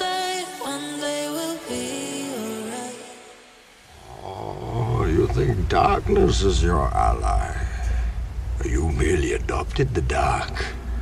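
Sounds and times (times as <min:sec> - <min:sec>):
low rumble: 0:03.9 - 0:11.0.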